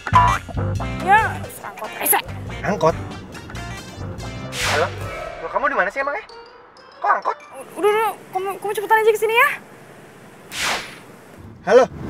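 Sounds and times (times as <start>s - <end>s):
swish sound effect: 4.5s - 5.9s, 10.5s - 11.0s.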